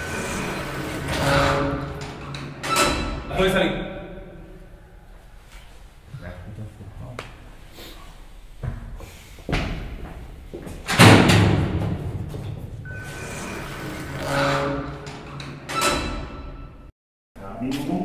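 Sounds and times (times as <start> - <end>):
heavy door slamming: 0.0 - 3.7, 10.8 - 16.9.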